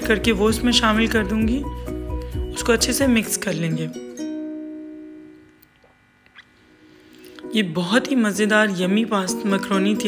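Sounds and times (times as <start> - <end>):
plucked-string background music: 0.0 - 5.7, 6.6 - 10.0.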